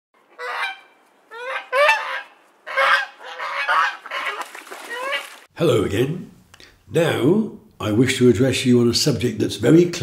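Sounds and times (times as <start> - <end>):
waterfowl honking: 0.3 - 5.5.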